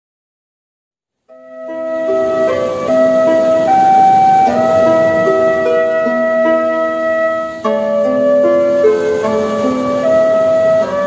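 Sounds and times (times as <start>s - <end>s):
slow melody of held notes: 1.3s - 11.0s.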